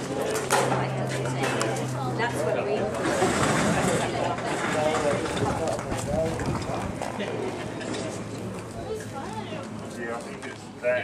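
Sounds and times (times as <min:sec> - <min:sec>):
people talking: 0:00.0 - 0:11.0.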